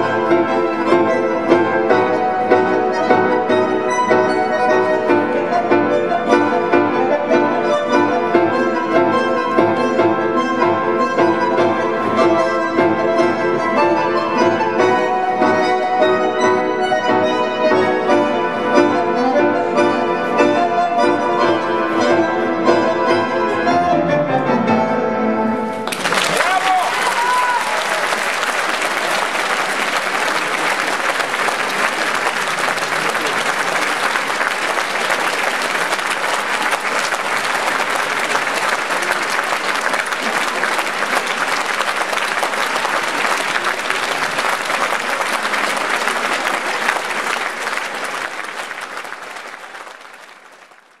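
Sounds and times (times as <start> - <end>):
audience applauding: 25.8 - 51.0.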